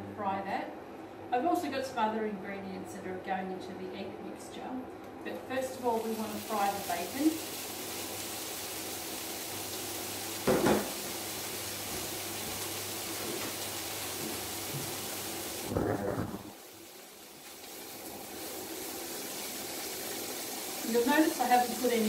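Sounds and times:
bacon sizzling in a frying pan: 5.7 - 15.8, 16.5 - 22.0.

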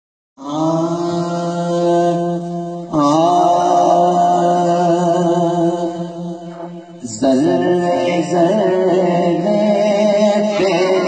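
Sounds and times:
man chanting held notes: 10.3 - 11.0.

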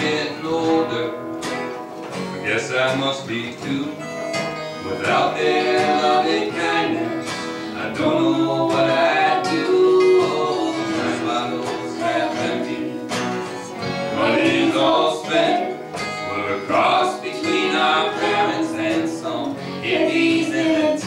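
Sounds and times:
acoustic guitars strumming: 0.0 - 21.0
banjo: 0.0 - 21.0
harmonica melody: 0.0 - 21.0.

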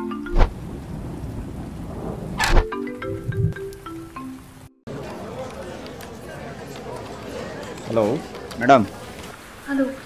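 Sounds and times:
marimba phone ringtone: 0.0 - 0.4, 2.7 - 4.5
rain-like rushing noise: 0.0 - 10.0
rising whoosh: 0.3 - 3.6.

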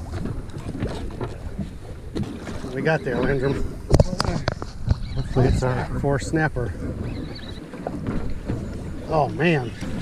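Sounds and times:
water lapping against boat hull: 0.0 - 10.0
wind buffeting microphone: 0.0 - 10.0.

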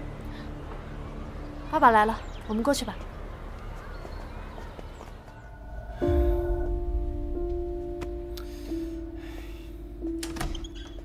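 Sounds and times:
outdoor background noise: 0.0 - 11.0
light footsteps: 2.4 - 6.0, 7.4 - 8.3.

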